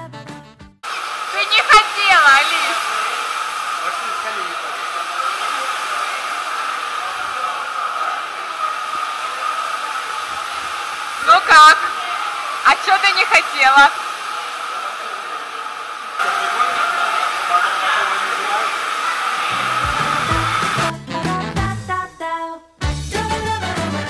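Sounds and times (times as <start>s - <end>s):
music: 0.0s - 0.8s, 19.6s - 24.0s
rushing water hall noise: 0.8s - 20.9s
shrill voices: 1.2s - 20.9s.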